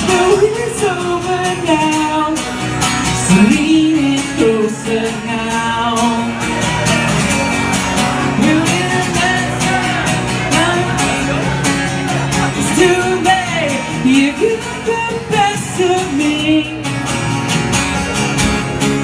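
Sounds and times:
person singing: 0.0s - 7.3s, 8.0s - 17.0s
guitar chords: 0.0s - 19.0s
live pop-rock song: 0.0s - 19.0s.

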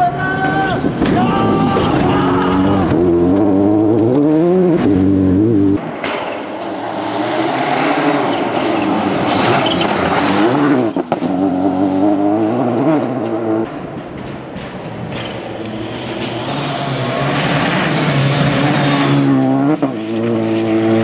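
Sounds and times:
rally car engine revving: 0.0s - 14.0s, 15.1s - 21.0s
tyres throwing gravel: 5.8s - 13.5s.

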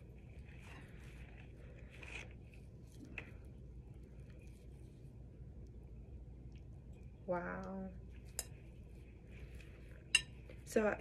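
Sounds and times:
slime squishing and scraping: 0.0s - 5.3s
low steady hum: 0.0s - 11.0s.

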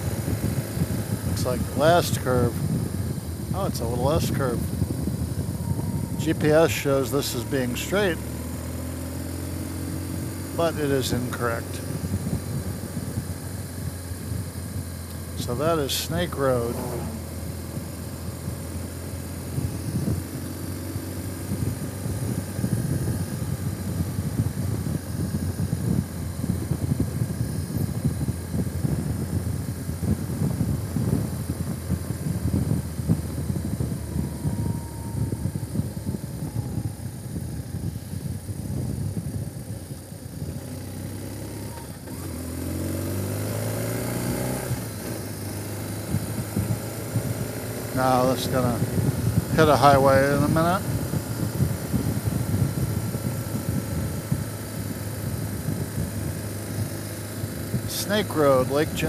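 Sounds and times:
vehicle engine and road noise: 0.0s - 59.0s.

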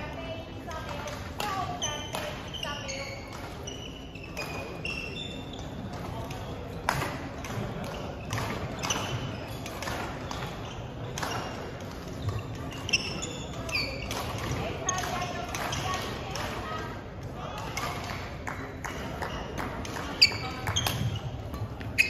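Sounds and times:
background chatter: 0.0s - 22.0s
shoes squeaking on wooden floor: 0.7s - 7.2s, 7.8s - 16.0s, 19.2s - 22.0s
racket hitting shuttlecock: 5.9s - 16.6s, 17.6s - 22.0s.

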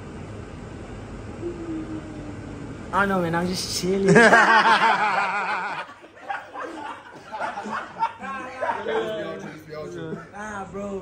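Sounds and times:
young men talking: 3.0s - 4.7s, 6.3s - 11.0s
men laughing: 4.1s - 10.4s.

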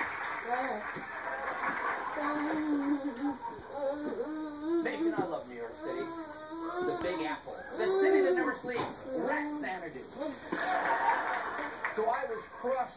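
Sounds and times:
toddler whimpering and crying: 2.2s - 10.6s.

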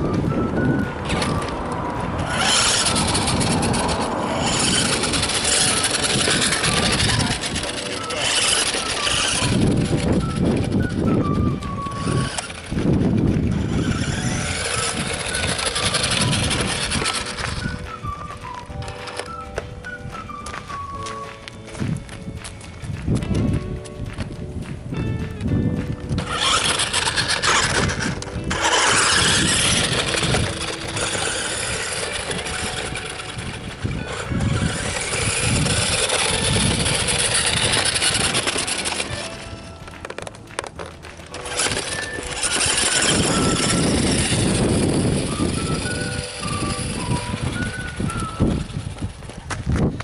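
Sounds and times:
background music: 0.0s - 48.9s
toy vehicle driving on gravel: 0.0s - 50.0s.

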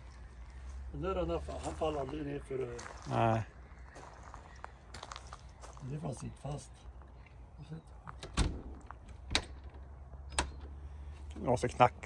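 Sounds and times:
door thudding against lock: 8.2s - 10.6s.

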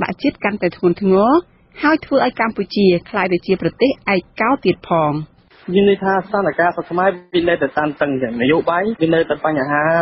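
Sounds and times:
news reader talking: 0.0s - 10.0s.

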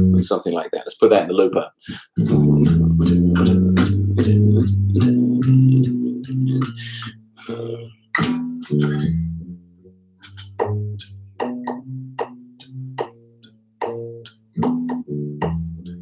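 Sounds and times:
electric bass guitar line: 0.0s - 0.3s, 1.9s - 16.0s.

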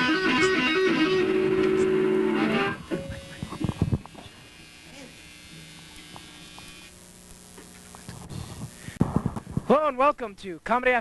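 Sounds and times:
faint electrical buzz: 0.2s - 11.0s.

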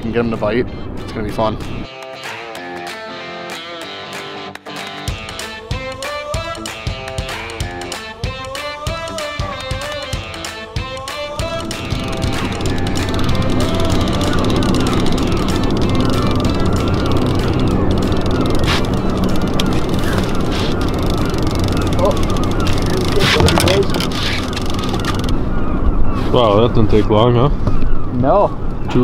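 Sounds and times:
background music: 0.0s - 25.5s
outboard motor running: 11.4s - 25.7s.

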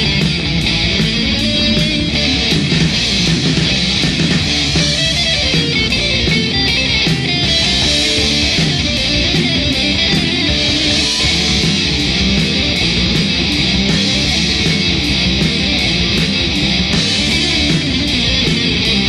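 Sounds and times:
heavy metal guitars bass and drums: 0.0s - 19.0s.

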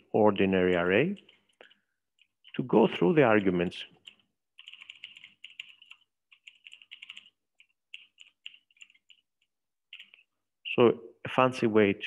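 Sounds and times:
computer keyboard typing: 1.0s - 10.3s.

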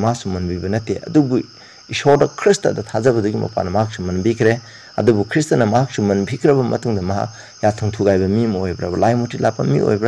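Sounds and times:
crickets chirring: 0.0s - 10.0s
man speaking: 0.0s - 10.0s.

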